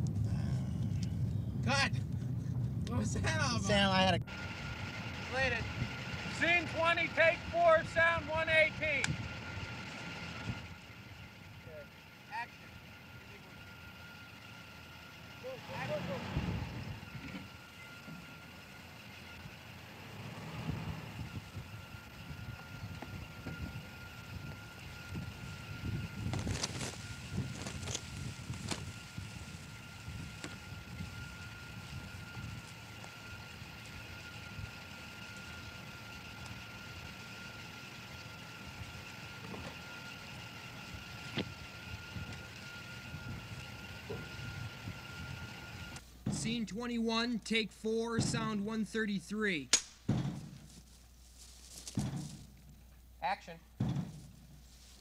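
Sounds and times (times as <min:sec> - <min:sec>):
car engine running: 0:00.0 - 0:55.0
faint steady high tone: 0:11.5 - 0:16.3.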